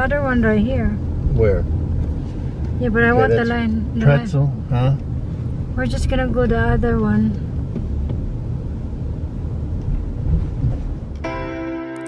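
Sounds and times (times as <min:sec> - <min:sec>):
car driving rumble: 0:00.0 - 0:11.3
keyboard chords music: 0:11.2 - 0:12.0.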